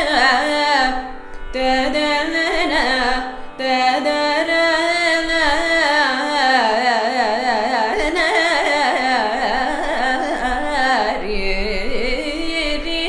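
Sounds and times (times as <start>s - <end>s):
woman singing: 0.0s - 13.0s.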